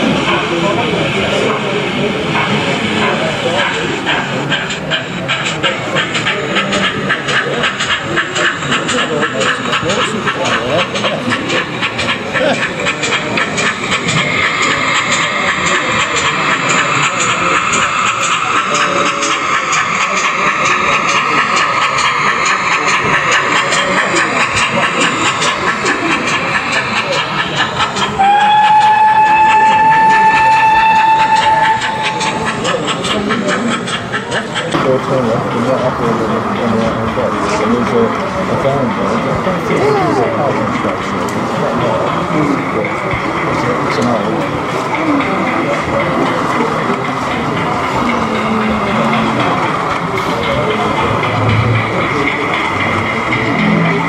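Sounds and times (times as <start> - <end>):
model steam locomotive chuffing: 0.0 - 54.0
steam locomotive whistle: 28.1 - 32.5.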